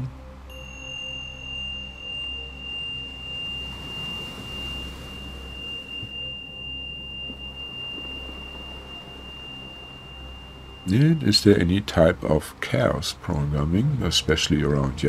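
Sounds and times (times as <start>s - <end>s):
low ambient drone: 0.0s - 15.0s
high ringing tone: 0.5s - 13.0s.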